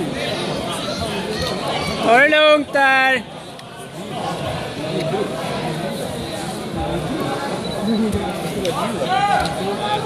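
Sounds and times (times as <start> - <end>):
crowd talking in a hall: 0.0 - 10.0.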